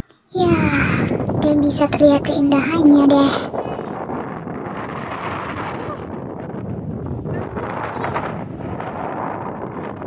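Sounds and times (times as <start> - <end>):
wind buffeting microphone: 0.3 - 10.0.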